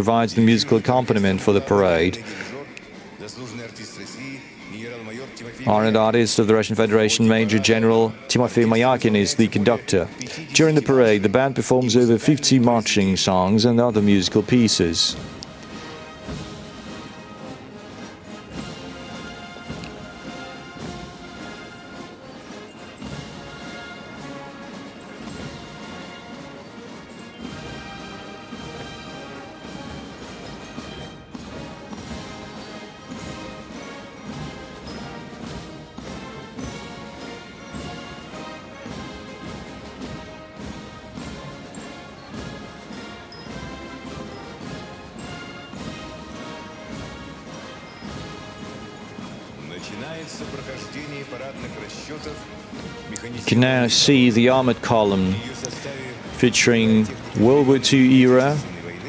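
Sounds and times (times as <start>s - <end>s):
military brass band playing a march: 0.0s - 3.9s, 5.4s - 59.0s
steady drum beat: 5.6s - 59.0s.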